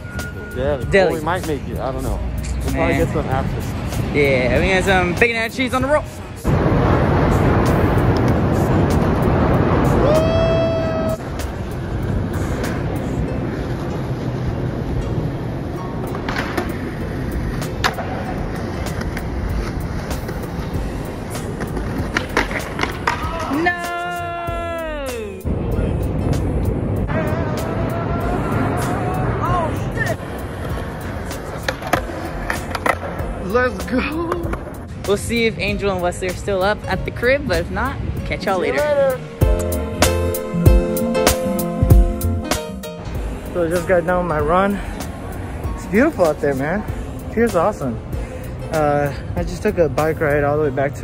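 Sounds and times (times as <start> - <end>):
skateboard wheels rolling on concrete: 0.0 - 51.0
skateboard tail clacks: 16.0 - 20.7, 21.3 - 23.7, 30.6 - 33.3.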